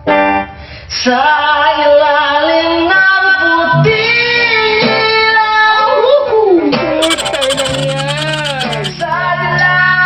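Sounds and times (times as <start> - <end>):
singer holding wavering note: 7.0 - 9.1.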